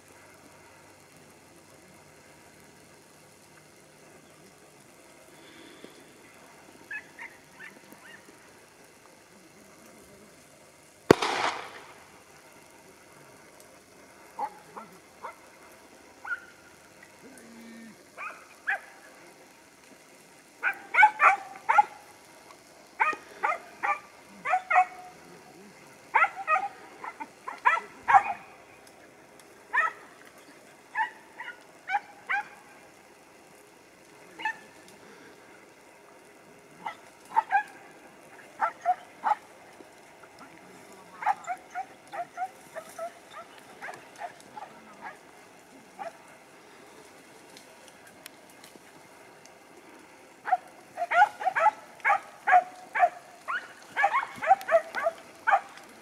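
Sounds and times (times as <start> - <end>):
hounds yelping: 6.9 - 8.3, 16.2 - 16.6, 20.6 - 22.0, 23.0 - 25.1, 26.1 - 28.6, 29.7 - 30.2, 30.9 - 32.6, 36.8 - 37.8, 38.4 - 39.5, 41.2 - 45.3, 46.0 - 46.3, 50.4 - 55.8
loud sharp sound: 11.1 - 12.1.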